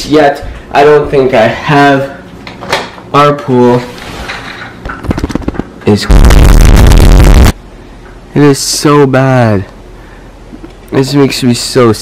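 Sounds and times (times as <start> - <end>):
distorted bass-boosted sound effect: 5.1 - 7.6.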